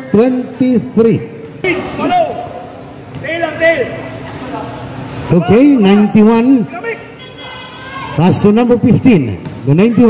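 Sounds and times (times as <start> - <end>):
low background noise: 0.0 - 10.0
man calling out: 5.3 - 9.1, 9.7 - 10.0.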